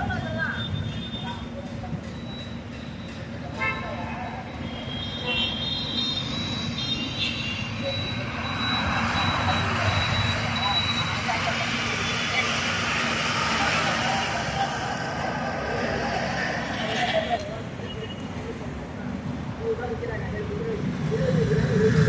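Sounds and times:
road traffic rumble: 0.0s - 22.0s
passing vehicle hiss: 7.6s - 18.6s.

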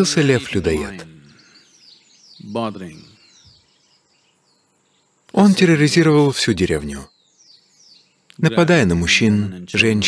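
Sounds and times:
man's voice: 0.0s - 1.6s, 2.4s - 3.2s, 5.4s - 7.1s, 8.4s - 10.0s
faint bird chirps: 0.0s - 10.0s.

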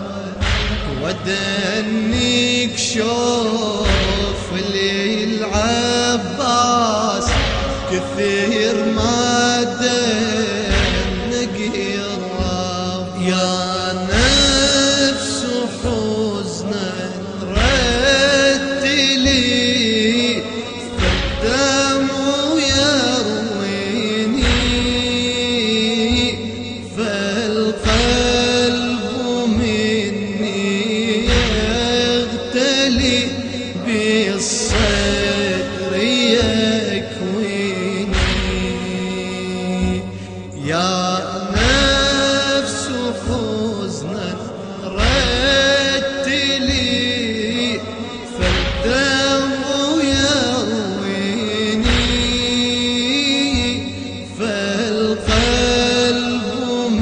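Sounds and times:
chanted vocal note: 0.0s - 57.0s
deep drum beat: 0.0s - 57.0s
steady drone: 0.0s - 57.0s
deep low thump: 0.3s - 2.5s, 3.8s - 5.0s, 7.1s - 9.3s, 10.2s - 12.9s, 20.9s - 23.0s, 31.2s - 33.7s, 38.0s - 40.8s, 48.3s - 50.3s, 51.8s - 54.3s.

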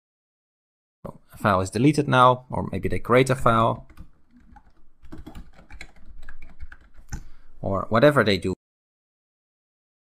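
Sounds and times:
typing on keyboard: 3.8s - 7.3s.

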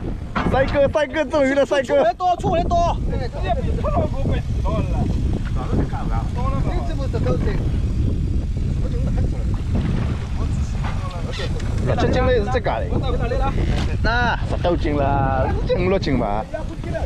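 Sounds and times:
motorboat engine rumble: 0.0s - 17.0s
people talking: 0.4s - 7.8s, 8.6s - 17.0s.

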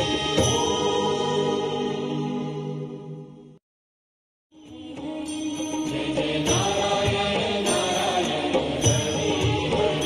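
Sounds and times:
devotional music with chanting: 0.0s - 3.6s, 4.6s - 10.0s.

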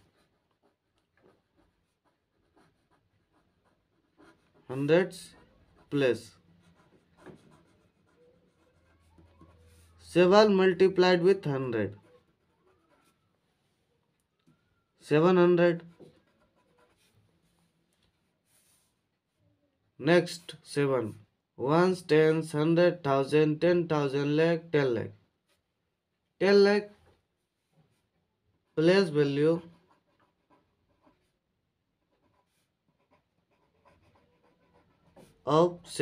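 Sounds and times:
pen scratching on paper: 0.0s - 13.4s, 15.1s - 19.1s, 27.6s - 36.0s.

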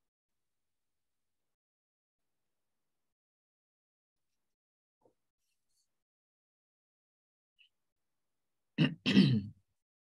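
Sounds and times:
person clearing throat: 8.8s - 9.6s.

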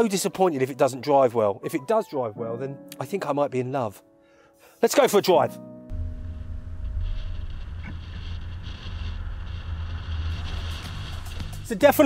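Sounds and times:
tyre noise rumble: 5.9s - 12.0s.

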